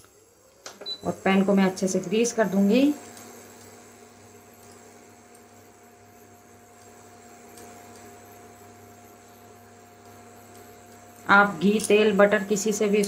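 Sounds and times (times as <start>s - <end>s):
cooktop electrical hum: 0.0s - 13.0s
thin steady whine: 0.0s - 13.0s.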